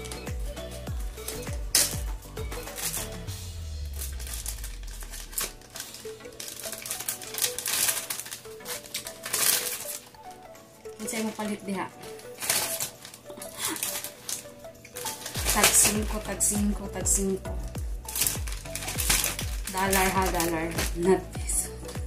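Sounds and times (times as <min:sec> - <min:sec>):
plastic bag crinkling: 0:00.0 - 0:00.3, 0:01.1 - 0:22.0
background music: 0:00.0 - 0:22.0.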